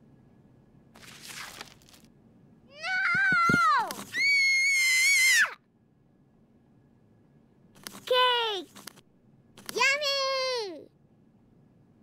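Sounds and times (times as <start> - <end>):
high-pitched screaming cry: 2.7 - 5.6.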